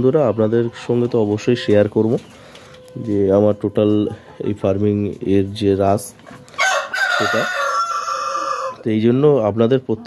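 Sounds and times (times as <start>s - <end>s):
rooster crowing: 6.5s - 8.8s.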